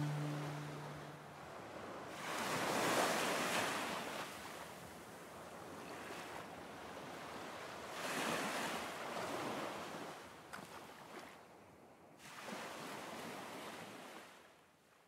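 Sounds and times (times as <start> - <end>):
ocean waves breaking on shore: 0.0 - 4.7, 5.6 - 11.4, 12.2 - 14.5.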